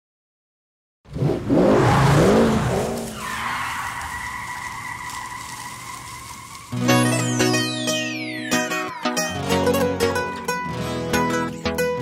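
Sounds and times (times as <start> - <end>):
engine revving hard: 1.1 - 3.2
tyres skidding: 1.1 - 8.9
tyre squeal: 1.8 - 7.6
plucked-string music: 6.8 - 12.0.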